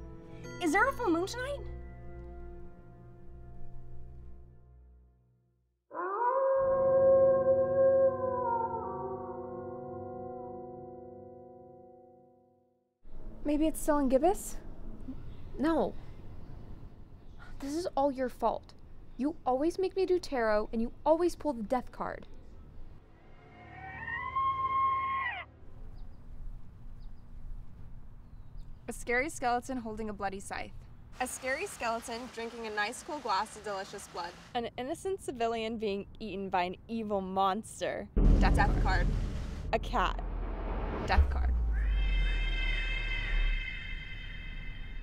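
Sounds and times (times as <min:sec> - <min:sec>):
wolf howl: 0:05.9 - 0:09.4, 0:23.3 - 0:25.5, 0:41.8 - 0:44.4
high tone sliding down: 0:38.2 - 0:45.0
low music drone: 0:38.2 - 0:45.0.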